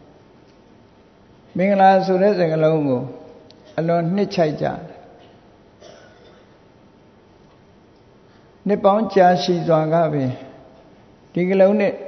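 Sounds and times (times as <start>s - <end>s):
man speaking: 1.5s - 5.2s, 8.7s - 12.0s.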